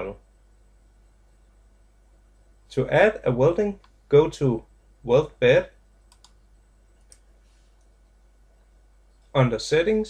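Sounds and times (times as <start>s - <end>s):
low steady hum: 0.0s - 10.0s
computer mouse clicks: 6.1s - 8.0s.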